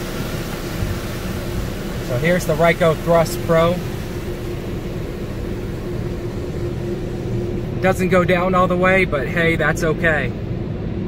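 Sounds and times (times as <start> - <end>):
car wash equipment humming and rushing: 0.0 - 11.0.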